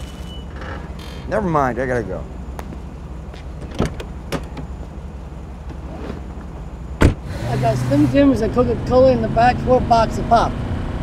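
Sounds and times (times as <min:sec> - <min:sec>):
car idling: 0:00.0 - 0:10.5
car door shutting: 0:03.4 - 0:04.8, 0:05.6 - 0:07.4
car door clicks opening: 0:03.6 - 0:04.7.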